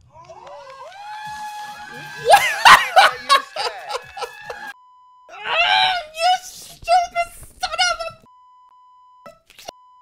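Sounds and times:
woman screaming: 0.2s - 4.7s, 5.3s - 6.2s.

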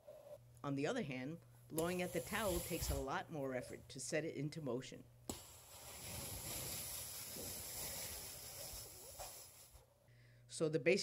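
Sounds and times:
person blowing at a towel: 2.0s - 3.1s, 5.3s - 9.9s.

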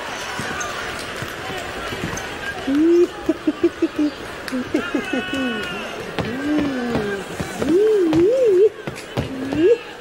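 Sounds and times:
background voices: 0.8s - 10.0s.

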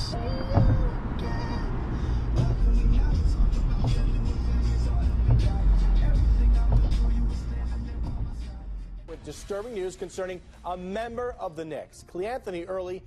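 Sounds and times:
music with heavy bass and drums: 2.3s - 9.8s.

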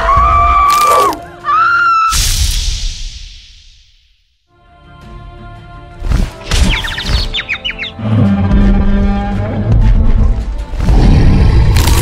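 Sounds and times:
background music: 0.0s - 2.8s, 4.5s - 12.0s
cartoon birds tweeting: 6.6s - 8.0s.

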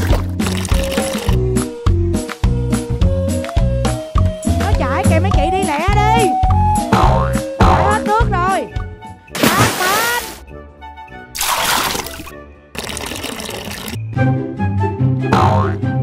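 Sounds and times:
water splashing from a bucket: 0.0s - 1.4s, 9.3s - 10.4s, 11.4s - 14.0s
playful music with boing tones: 6.1s - 8.4s, 15.2s - 16.0s.

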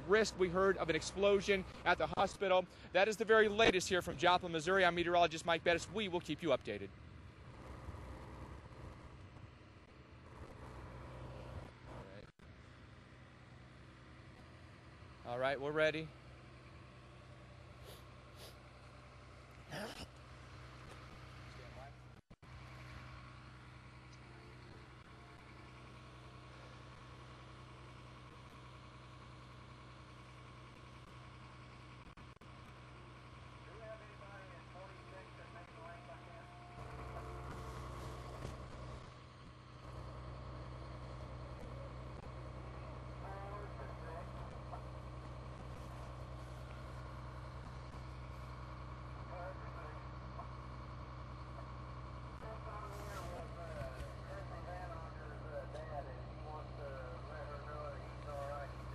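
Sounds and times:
low mechanical hum: 0.0s - 58.9s.

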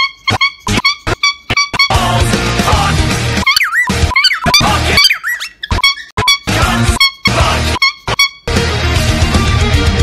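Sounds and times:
heavy metal song: 1.9s - 3.4s, 6.5s - 7.8s, 8.5s - 10.0s.

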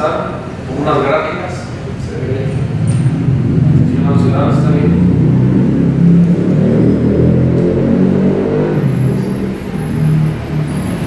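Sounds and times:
heavy low rumble: 0.0s - 11.0s
muffled talking: 3.7s - 5.2s.

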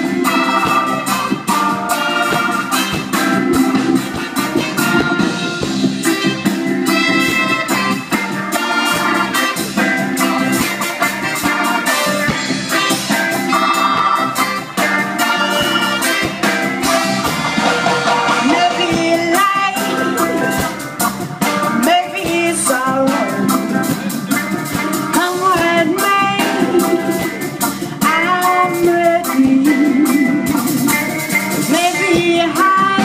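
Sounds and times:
live band playing upbeat music: 0.0s - 33.0s
person singing: 18.3s - 20.8s, 21.7s - 33.0s.

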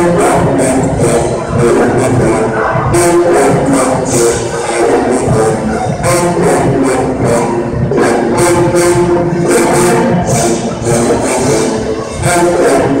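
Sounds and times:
brass holding loud chords: 0.0s - 13.0s
drums and cymbals beat: 0.1s - 13.0s.

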